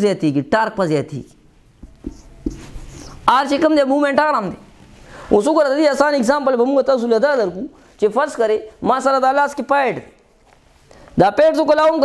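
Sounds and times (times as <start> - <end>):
marker scratching on whiteboard: 1.8 - 3.3.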